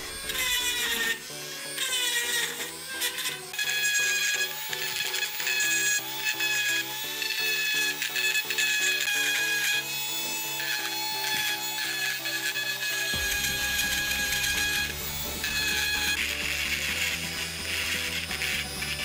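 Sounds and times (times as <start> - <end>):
background music: 0.0 - 19.0
rotary tool grinding steel: 0.0 - 19.0.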